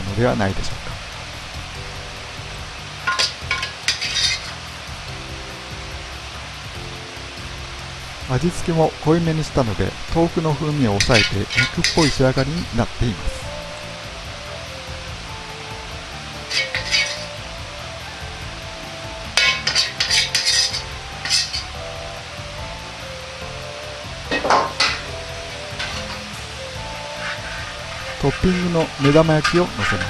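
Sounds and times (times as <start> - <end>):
background music: 0.0 - 30.0
metal cookware clinking and scraping: 3.0 - 4.7, 10.8 - 13.4, 16.4 - 17.4, 19.3 - 21.8, 24.3 - 30.0.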